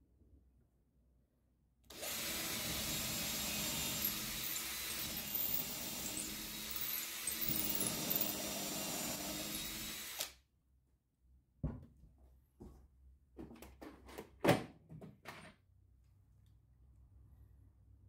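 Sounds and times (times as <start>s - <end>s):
cordless drill boring into wood: 1.9s - 10.4s
knock: 11.6s - 12.0s.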